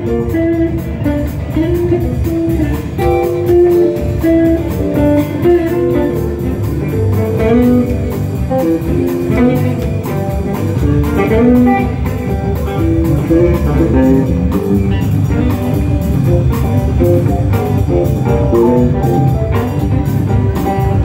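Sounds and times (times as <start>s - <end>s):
rock band playing: 0.0s - 21.0s.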